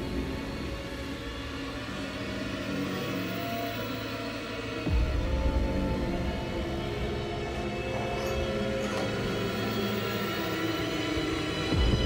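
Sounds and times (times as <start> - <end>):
tense dramatic background music: 0.0 - 12.0.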